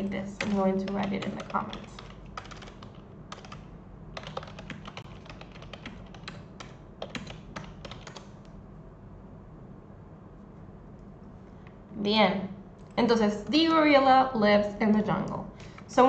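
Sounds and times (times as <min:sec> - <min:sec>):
typing on a keyboard: 0:00.4 - 0:08.4.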